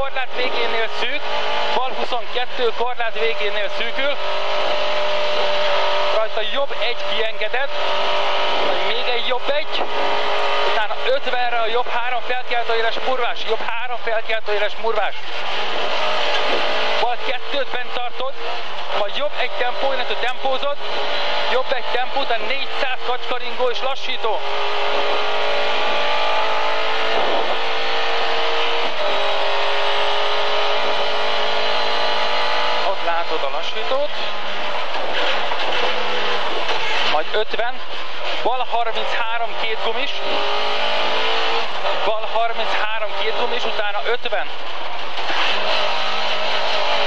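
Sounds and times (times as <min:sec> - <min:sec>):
car engine running hard: 0:00.0 - 0:47.0
road and wind noise: 0:00.0 - 0:47.0.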